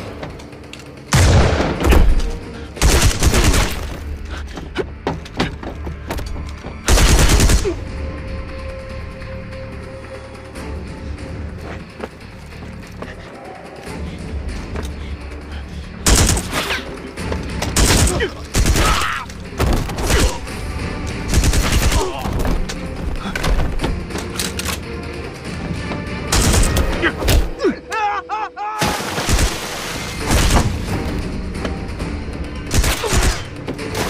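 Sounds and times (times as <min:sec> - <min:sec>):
film music held tone: 0:00.0 - 0:34.0.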